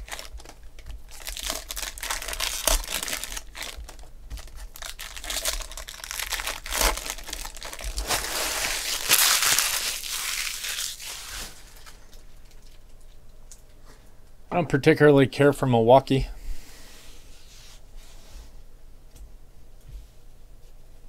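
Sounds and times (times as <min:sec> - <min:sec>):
plastic wrapper crinkling and tearing: 0:00.0 - 0:13.2.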